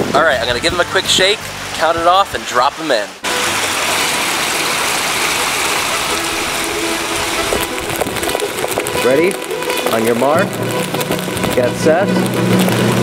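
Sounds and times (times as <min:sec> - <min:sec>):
brook water rushing: 0:00.0 - 0:13.0.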